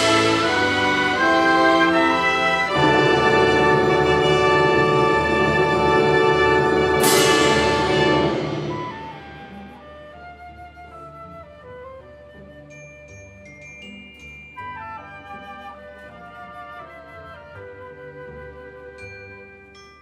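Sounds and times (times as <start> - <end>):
percussion crash: 0.0 - 10.2
chamber orchestra playing: 0.0 - 19.9.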